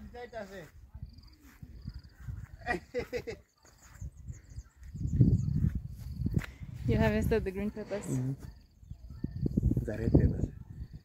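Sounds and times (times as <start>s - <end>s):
footsteps on grass: 0.0s - 7.6s.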